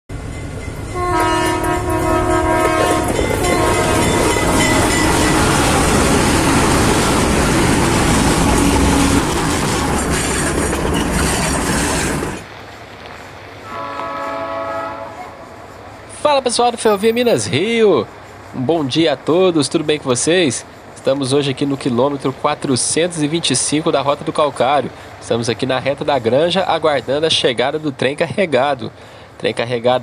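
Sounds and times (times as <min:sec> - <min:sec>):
passing train rolling noise: 0:00.1 - 0:30.0
train horn blasts: 0:00.9 - 0:06.7, 0:13.6 - 0:15.8.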